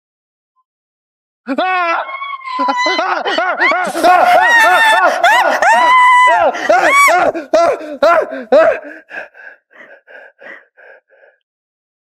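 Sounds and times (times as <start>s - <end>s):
person screaming: 1.5s - 9.1s.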